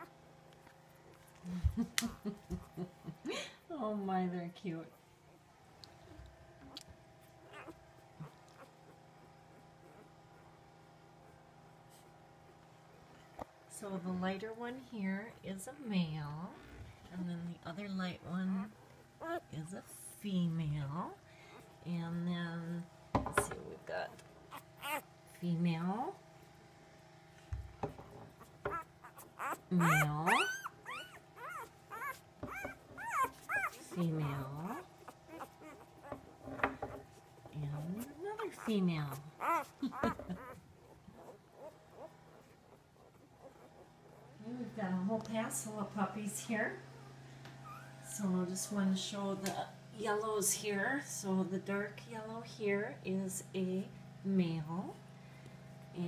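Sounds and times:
puppy squeaking: 7.4 - 8.8, 19.2 - 19.5, 24.5 - 25.1, 28.4 - 34.0, 34.6 - 36.3, 37.9 - 44.4, 47.6 - 48.0.

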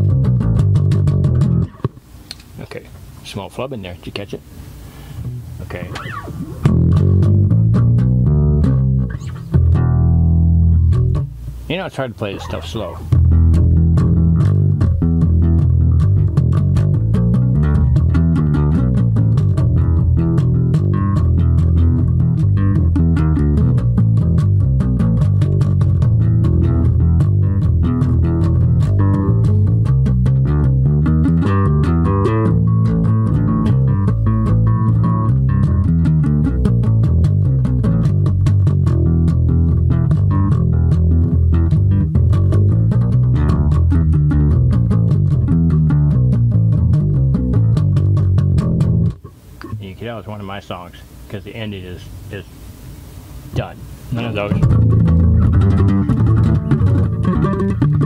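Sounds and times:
electric bass guitar plucked notes: 0.0 - 2.8, 4.9 - 50.6, 53.5 - 58.0.

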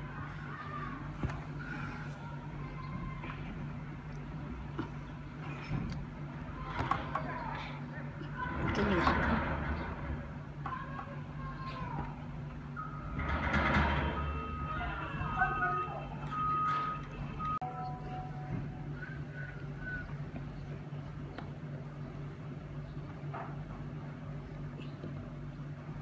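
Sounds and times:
diesel engines droning: 8.0 - 20.9.

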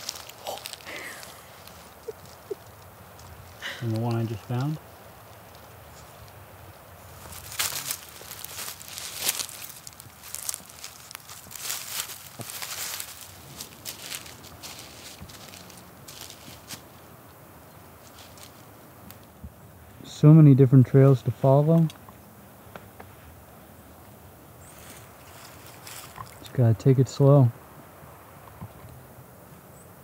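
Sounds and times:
rustling of dry leaves: 0.0 - 30.0.

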